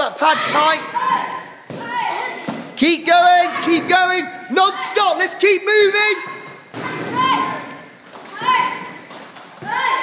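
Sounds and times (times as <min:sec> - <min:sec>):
children shouting in echoing hall: 0:00.2 - 0:02.5, 0:06.0 - 0:10.0.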